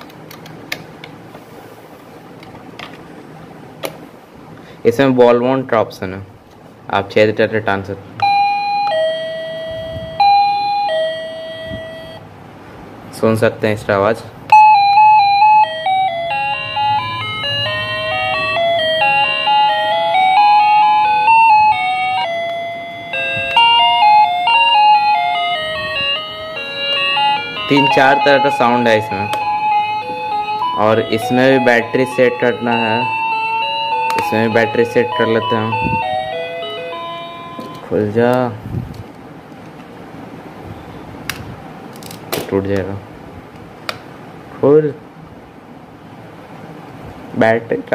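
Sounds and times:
electronic doorbell melody: 0:08.2 - 0:12.2, 0:14.5 - 0:37.9.

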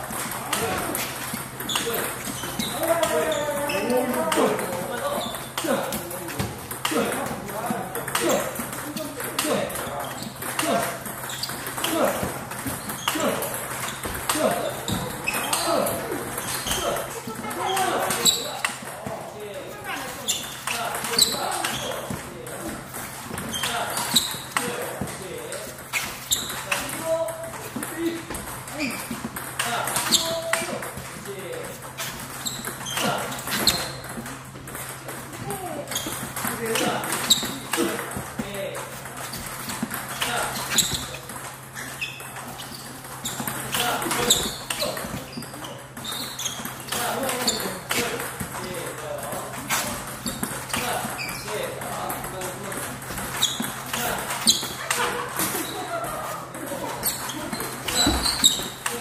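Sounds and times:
table tennis balls clicking: 0:00.0 - 0:19.3, 0:19.9 - 0:55.9.

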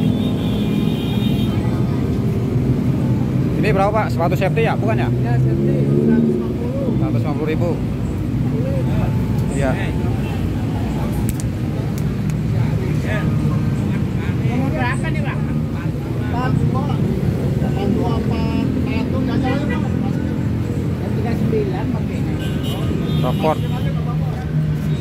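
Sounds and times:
road traffic rumble: 0:00.0 - 0:25.0
people talking: 0:08.4 - 0:11.9, 0:12.5 - 0:25.0.

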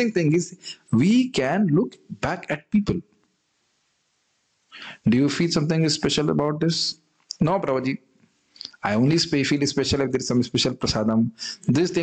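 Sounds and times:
man breathing in: 0:04.8 - 0:05.0.

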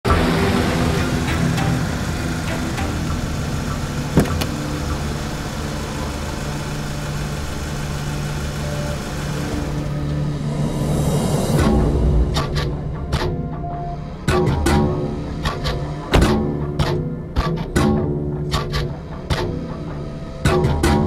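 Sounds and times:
car engine running: 0:00.1 - 0:10.5
dramatic music score: 0:00.1 - 0:21.0.

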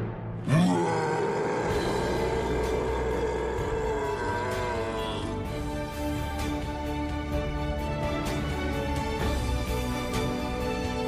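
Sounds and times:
film score music: 0:00.0 - 0:11.0
growling creature call: 0:00.4 - 0:05.5.

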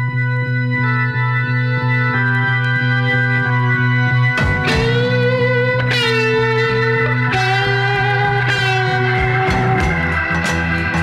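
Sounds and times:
held rock chords: 0:00.0 - 0:11.0
steady bass: 0:00.0 - 0:11.0.

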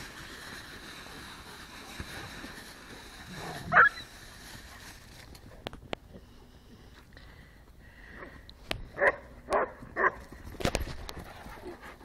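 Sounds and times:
dogs playing rough: 0:00.0 - 0:05.5, 0:10.0 - 0:12.0
dog barking: 0:09.0 - 0:10.2.

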